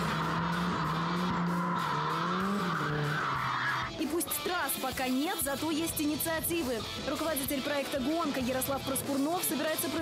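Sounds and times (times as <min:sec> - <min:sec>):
engine at high revs: 0:00.0 - 0:04.0
tyres squealing: 0:00.0 - 0:04.0
background music: 0:00.0 - 0:10.0.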